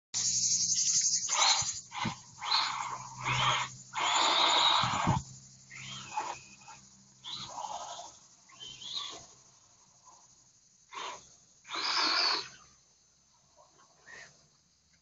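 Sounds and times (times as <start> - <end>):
rc car motors and tyres on dirt: 0.2 - 15.0.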